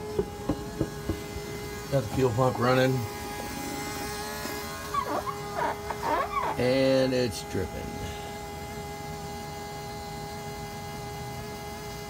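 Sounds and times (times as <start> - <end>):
fuel pump electric buzz: 0.0 - 12.0
short whining cries: 4.8 - 6.6.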